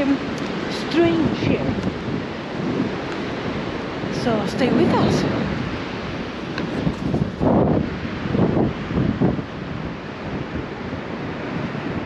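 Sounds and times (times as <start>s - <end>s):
surf breaking on shore: 0.0s - 12.0s
wind buffeting microphone: 0.0s - 12.0s.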